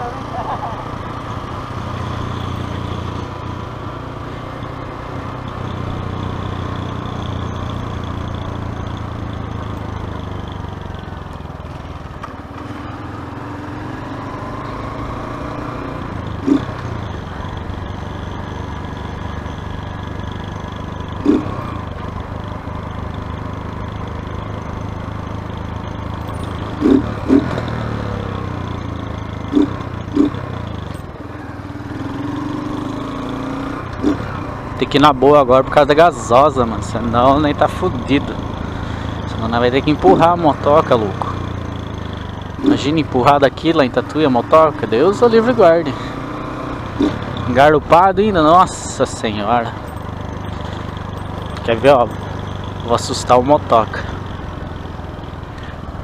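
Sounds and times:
small motorcycle engine running: 0.0 - 56.0.

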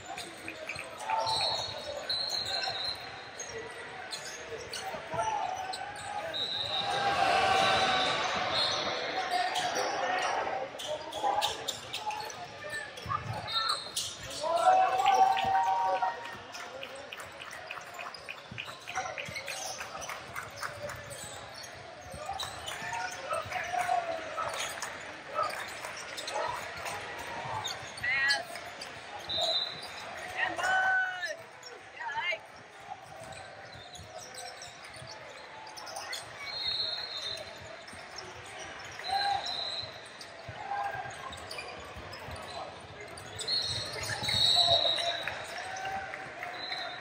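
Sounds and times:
indistinct shouts: 6.3 - 10.7.

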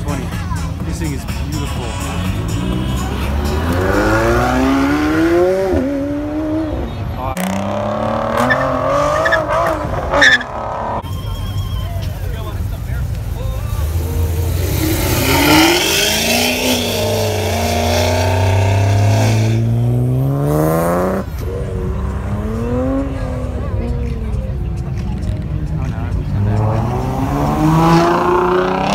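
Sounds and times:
sports car engines revving: 0.0 - 11.1, 12.1 - 28.9.

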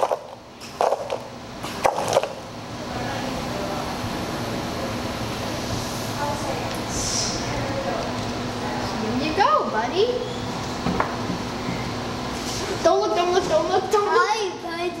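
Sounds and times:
faint machine hum: 0.0 - 15.0.

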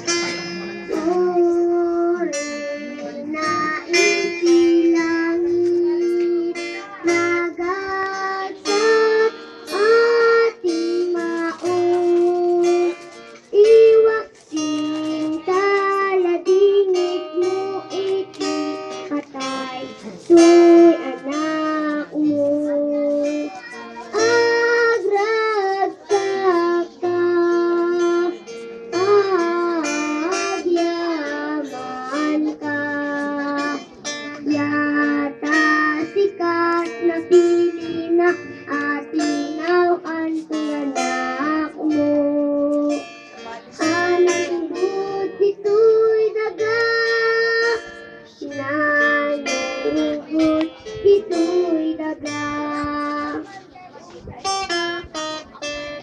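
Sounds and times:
strummed guitar: 0.0 - 56.0
children's choir singing a hymn: 43.7 - 53.4.

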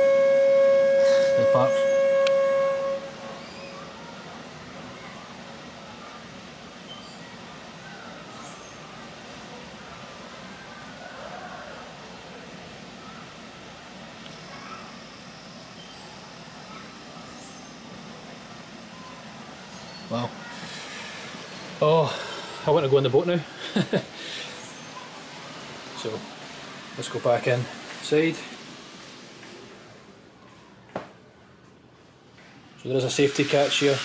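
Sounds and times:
boat horn: 0.0 - 3.4
steady low hum: 0.0 - 11.0
distant voices of people: 0.0 - 34.0.

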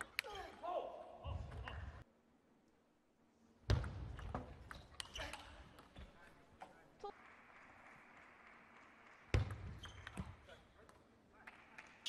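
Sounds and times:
table tennis ball bouncing: 3.7 - 5.9.

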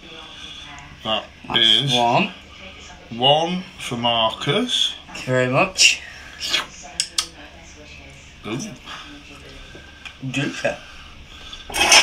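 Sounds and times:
dishware scraping: 11.4 - 12.0.

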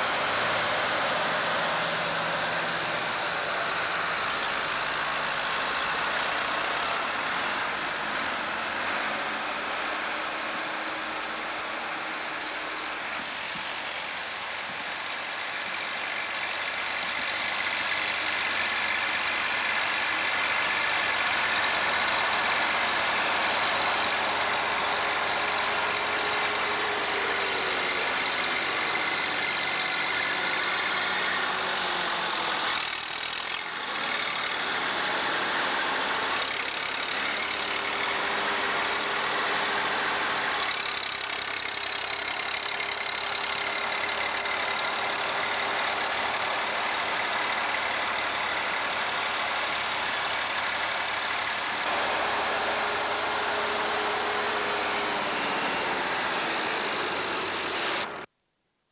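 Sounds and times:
tractor diesel engines running: 0.0 - 58.3.

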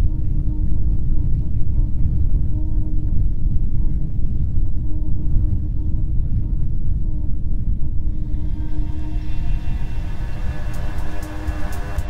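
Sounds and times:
deep rumbling drone: 0.0 - 12.0
held synth chord: 8.1 - 12.0
sharp high ticks: 9.5 - 12.0.

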